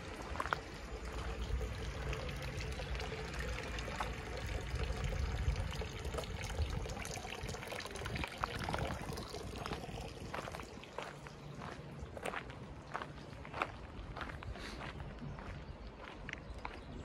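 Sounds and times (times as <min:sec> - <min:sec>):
footsteps on a path: 0:00.0 - 0:01.5, 0:09.6 - 0:17.0
water pouring and splashing: 0:00.0 - 0:12.7.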